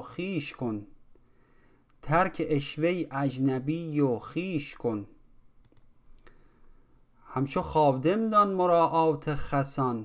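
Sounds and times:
computer mouse clicks: 5.6 - 6.4.

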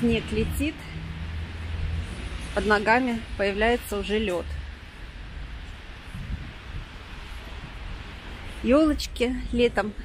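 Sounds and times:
wind buffeting microphone: 4.6 - 10.0.

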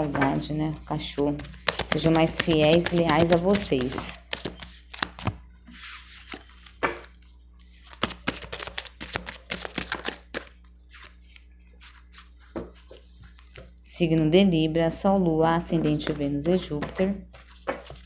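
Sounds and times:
cards being shuffled: 0.0 - 13.8, 15.8 - 18.0.

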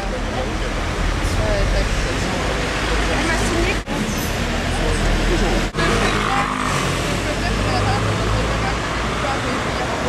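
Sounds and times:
steady low outdoor rumble: 0.0 - 5.6
indistinct voices: 0.0 - 10.0.

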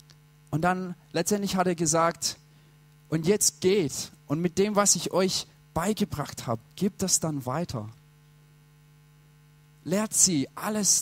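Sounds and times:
faint electrical mains hum: 0.0 - 11.0
man speaking: 0.5 - 2.4, 3.1 - 8.0, 9.9 - 11.0.

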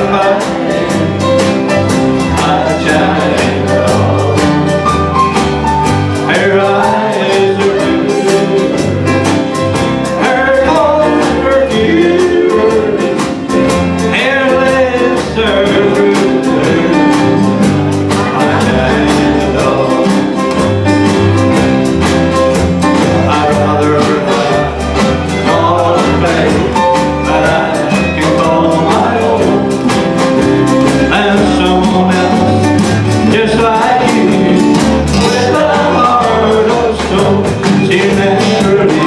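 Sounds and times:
man singing: 0.0 - 5.4, 6.1 - 21.5, 22.8 - 39.0
country band playing: 0.0 - 39.0.

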